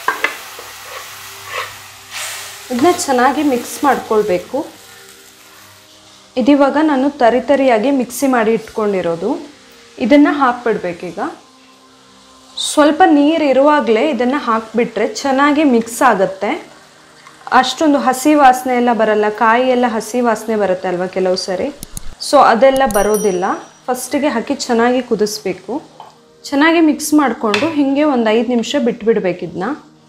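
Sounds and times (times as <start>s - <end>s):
food frying in oil: 0.0s - 26.0s
woman speaking: 17.8s - 25.8s.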